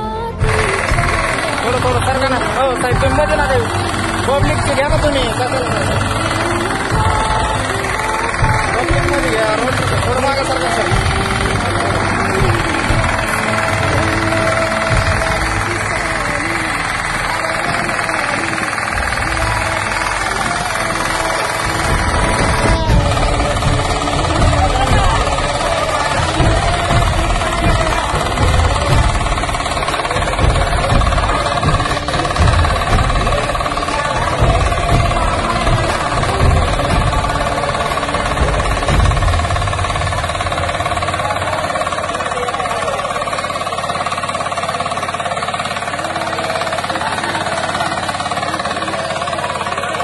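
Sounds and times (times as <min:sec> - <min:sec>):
power tiller engine rumbling: 0:00.0 - 0:50.0.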